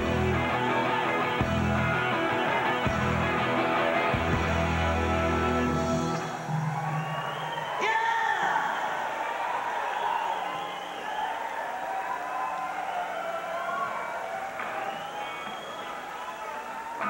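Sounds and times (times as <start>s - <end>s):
crowd cheering and whooping: 0.0s - 17.0s.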